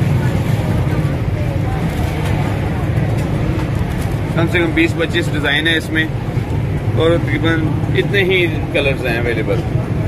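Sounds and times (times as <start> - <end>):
faint voices: 0.0 - 10.0
low rumble of background noise: 0.0 - 10.0.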